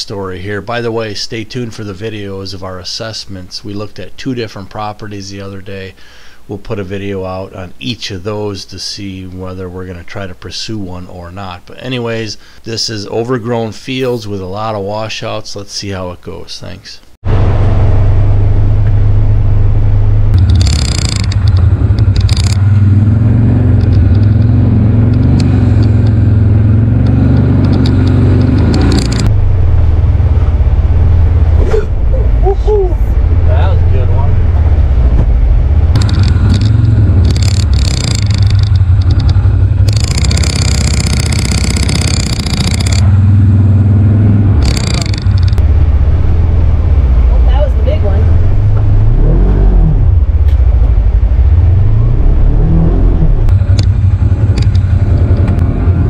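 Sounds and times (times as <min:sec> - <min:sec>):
vehicle engine droning: 0:17.2 - 0:56.0.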